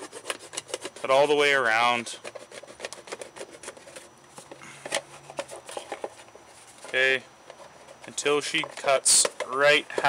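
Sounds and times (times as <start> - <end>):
knife cutting plastic: 0.0 - 1.3.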